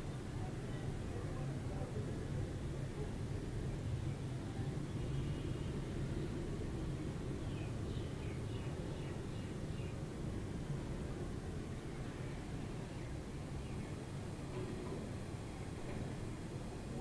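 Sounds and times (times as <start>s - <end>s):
low background noise: 0.0s - 17.0s.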